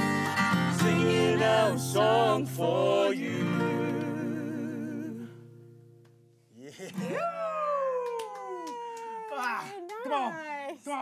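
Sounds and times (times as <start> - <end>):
men singing: 0.0 - 5.4.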